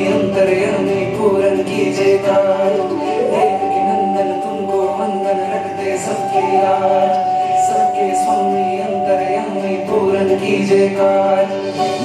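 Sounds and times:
devotional song over music: 0.0 - 12.0
voice holding long note: 3.1 - 10.4.

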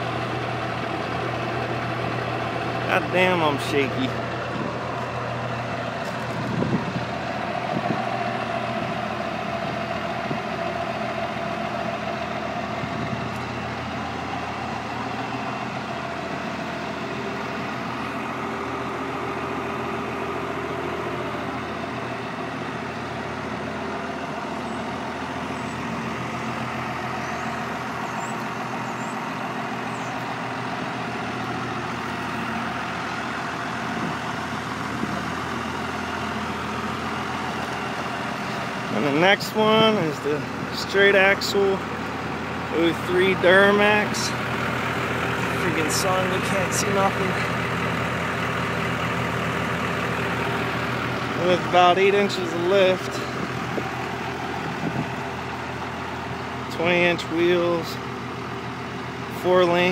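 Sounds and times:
diesel truck engine idling: 0.0 - 59.9.

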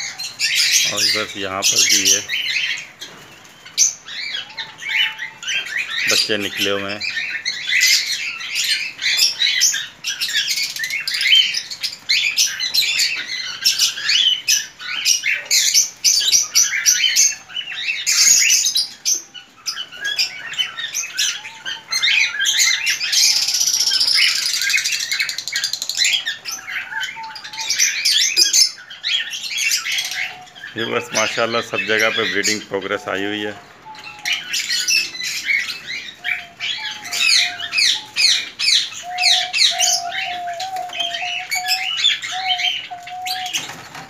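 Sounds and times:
small birds chirping: 0.0 - 44.0.

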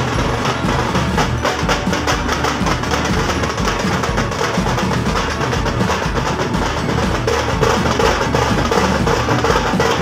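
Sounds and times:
frame drums beaten fast: 0.0 - 10.0.

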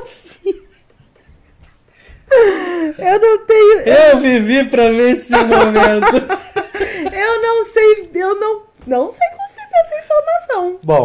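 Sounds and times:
person laughing wail: 5.4 - 7.3.

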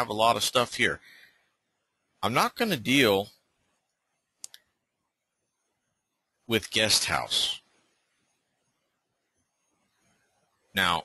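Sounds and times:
computer mouse clicks: 4.4 - 4.7.

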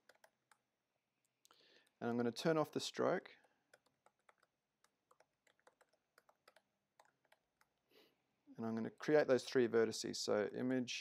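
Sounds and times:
keyboard typing clicks: 0.0 - 0.6, 3.7 - 7.7.

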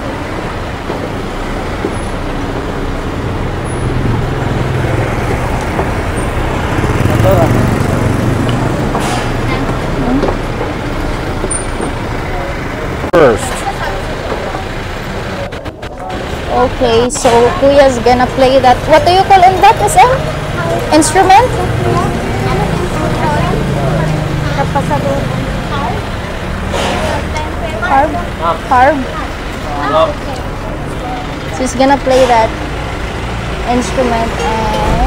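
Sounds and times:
passing vehicle engine: 0.0 - 35.0
road traffic rumble: 0.0 - 35.0.

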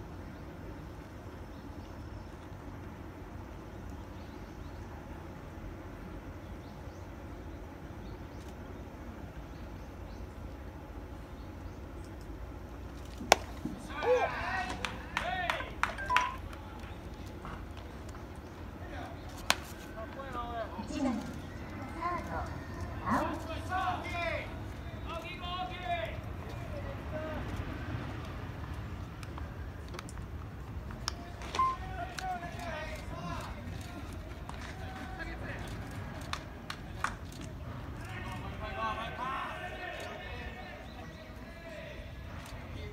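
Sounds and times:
open-air ballpark ambience: 0.0 - 42.9
voices shouting drawn-out calls: 13.3 - 17.7, 18.4 - 28.6, 37.6 - 42.9
people shouting: 13.8 - 15.9, 38.0 - 40.7
brief high tone: 31.6 - 31.8.

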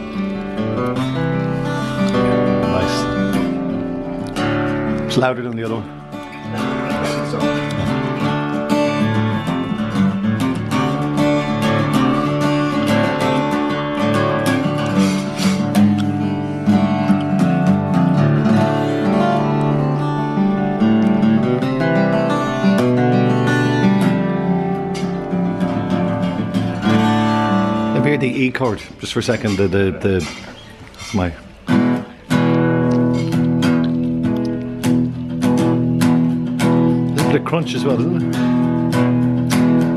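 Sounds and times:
acoustic guitar picking and chords: 0.0 - 39.9.

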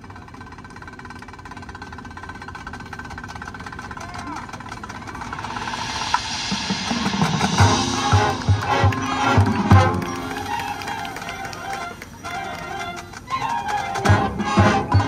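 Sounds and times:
marching band held tones: 4.1 - 15.0
hissing swell: 4.8 - 12.4
low drum hits: 5.1 - 10.2.

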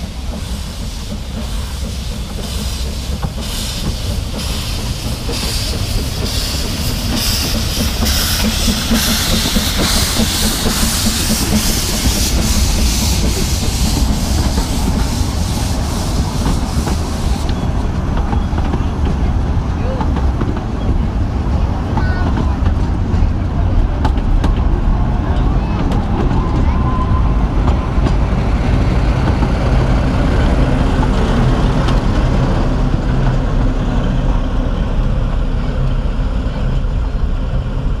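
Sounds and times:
steam hissing from locomotive: 0.0 - 18.7
train coaches rumbling: 0.0 - 38.0.

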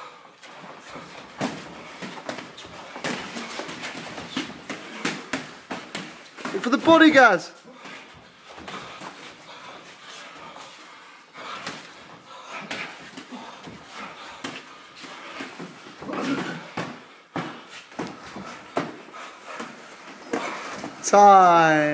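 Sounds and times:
sharp breaths: 0.0 - 21.0
boxing gloves thudding: 0.4 - 10.0, 11.4 - 21.0.

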